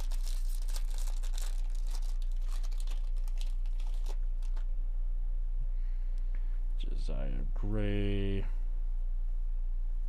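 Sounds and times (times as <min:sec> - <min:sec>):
foil wrapper crinkling and tearing: 0:00.0 - 0:04.7
low hum: 0:00.0 - 0:10.0.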